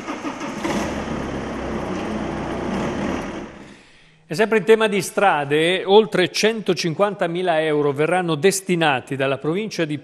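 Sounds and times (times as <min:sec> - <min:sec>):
car engine idling: 0:00.0 - 0:03.6.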